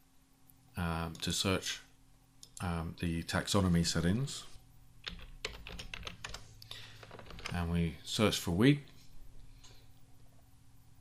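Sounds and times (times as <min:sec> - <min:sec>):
keyboard typing: 0:05.0 - 0:07.7.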